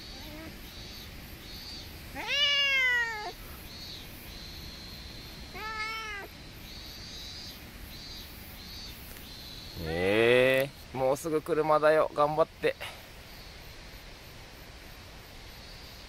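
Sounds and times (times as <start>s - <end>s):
cat meowing: 0.0s - 0.6s, 2.1s - 3.4s, 5.5s - 6.3s.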